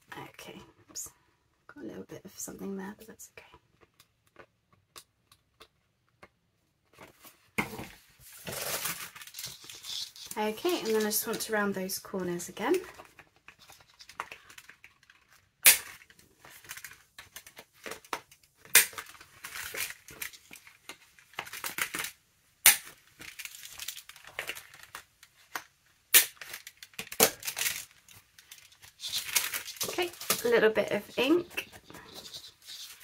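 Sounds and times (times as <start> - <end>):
paper rustling: 6.9 - 11.6, 26.4 - 33.0.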